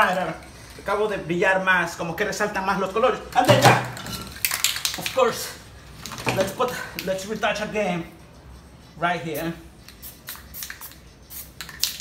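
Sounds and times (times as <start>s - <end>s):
spray paint can hissing: 9.3s - 12.0s.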